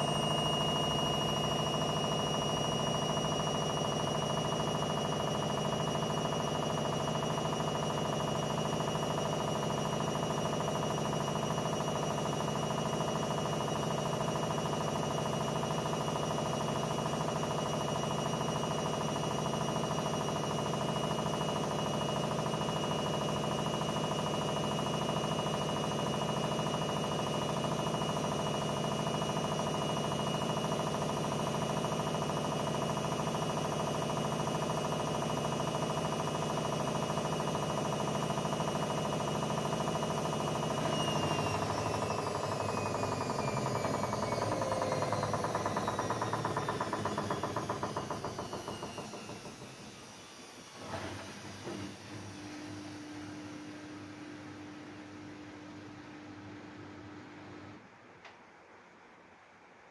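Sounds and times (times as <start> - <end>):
washing machine spinning: 0.0 - 58.2.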